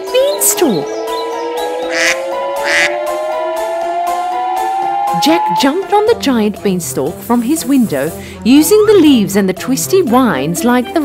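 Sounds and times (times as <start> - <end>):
background music with rising tone: 0.0 - 11.0
cartoon goose quacking: 1.9 - 3.0.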